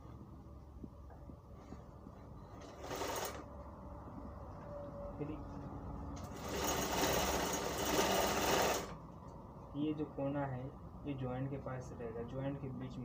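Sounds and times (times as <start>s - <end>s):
sewing machine stitching cloth: 2.5s - 3.5s, 6.2s - 9.0s.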